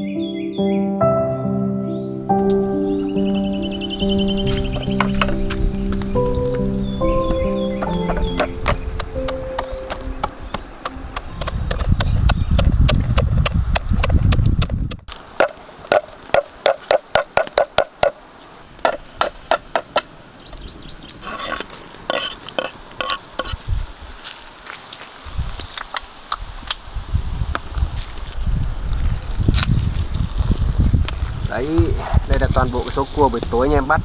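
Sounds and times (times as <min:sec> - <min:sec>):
soft background music: 0:00.0 - 0:11.4
low rumbling: 0:01.4 - 0:15.1.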